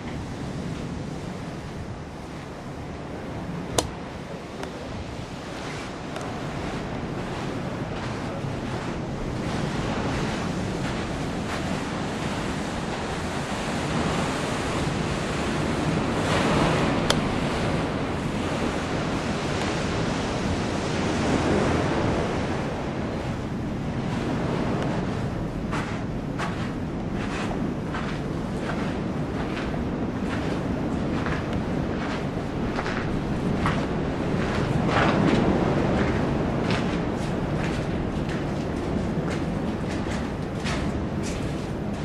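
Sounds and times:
surf washing over rocks: 0:00.0 - 0:42.0
wind on microphone: 0:00.0 - 0:42.0.

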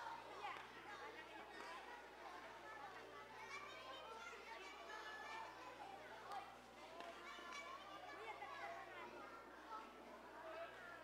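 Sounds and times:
murmur of crowd chattering: 0:00.0 - 0:11.0.

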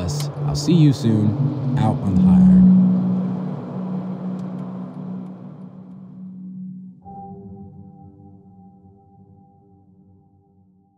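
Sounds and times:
car driving on highway: 0:00.0 - 0:06.2.

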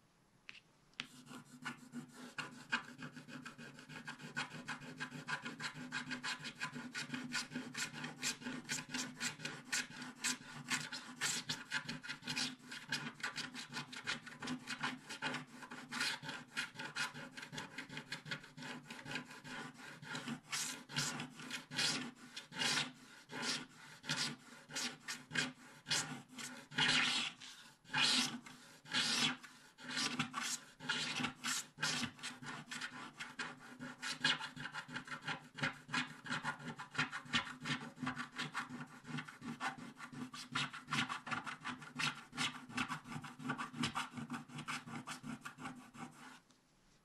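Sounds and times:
stylus scraping scratch-art card: 0:01.0 - 0:46.4.

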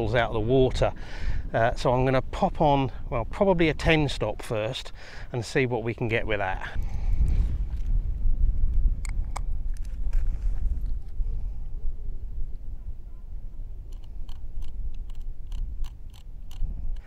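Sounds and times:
wind buffeting microphone: 0:00.0 - 0:17.0
camera clicks: 0:13.9 - 0:17.0.

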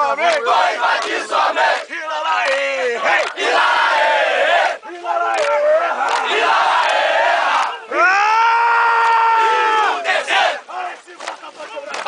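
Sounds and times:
soldiers chanting in unison: 0:00.0 - 0:08.0, 0:09.4 - 0:11.7.

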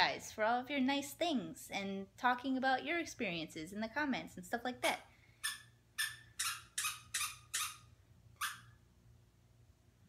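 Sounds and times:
rubber squeaky toy squeaking: 0:05.4 - 0:08.8.

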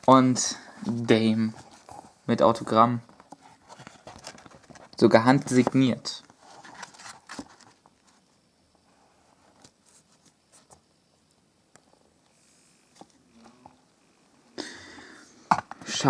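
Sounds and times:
card rustling: 0:00.1 - 0:08.3, 0:09.3 - 0:10.8.

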